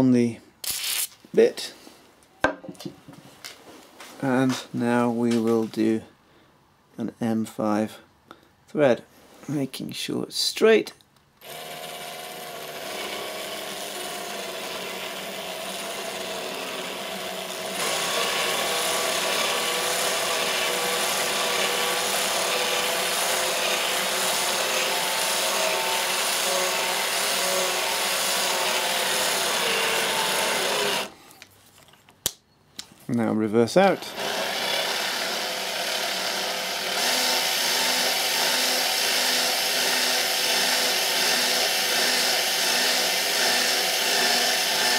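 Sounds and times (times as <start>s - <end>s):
drill click: 11.4s - 25.0s, 34.0s - 44.8s
drill motor whine: 11.4s - 31.1s, 34.0s - 44.9s.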